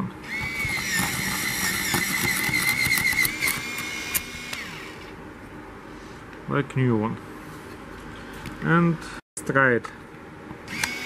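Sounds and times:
pencil sharpener motor whining: 0.2s - 5.2s, 10.7s - 11.0s
pencil shaving crackling clicks: 0.4s - 4.2s.

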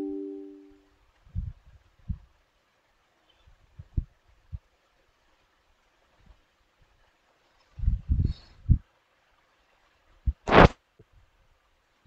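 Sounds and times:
electronic chime: 0.0s - 0.6s.

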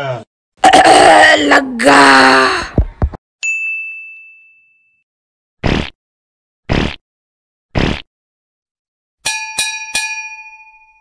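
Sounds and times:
man groaning: 0.6s - 2.7s
bell-like ding: 3.4s - 5.0s, 9.2s - 11.0s.

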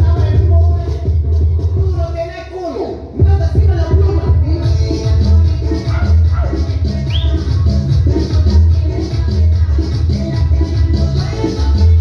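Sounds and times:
latin dance music: 0.0s - 12.0s
shaker rhythm: 3.5s - 12.0s.

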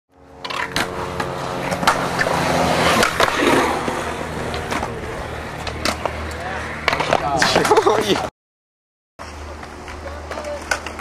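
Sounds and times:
skateboard wheels rolling on concrete: 0.2s - 8.3s, 9.2s - 11.0s
skateboard clacking on ground: 0.4s - 3.8s, 5.6s - 8.3s, 9.5s - 11.0s.

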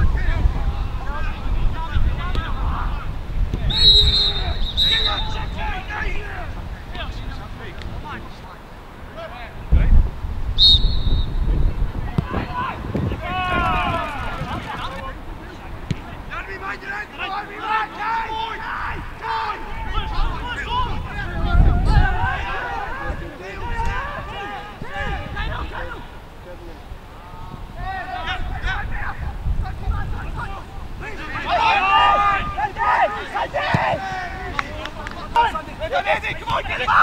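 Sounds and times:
wind rumbling on microphone: 0.0s - 16.4s, 18.7s - 37.0s
referee's whistle: 3.7s - 5.6s, 10.6s - 11.6s
players shouting: 3.7s - 6.6s, 12.0s - 26.3s, 27.8s - 37.0s.

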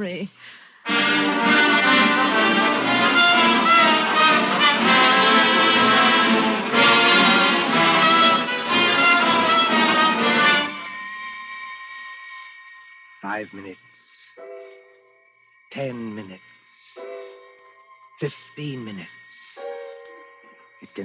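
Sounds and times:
loud dramatic music bridge: 0.9s - 11.4s.

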